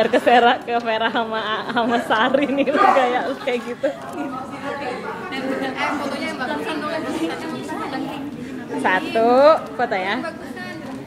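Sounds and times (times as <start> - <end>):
women chattering: 0.0 - 11.0.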